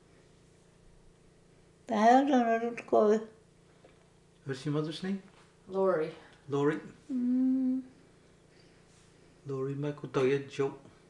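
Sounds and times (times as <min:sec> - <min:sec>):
woman humming: 0:07.1 - 0:08.0.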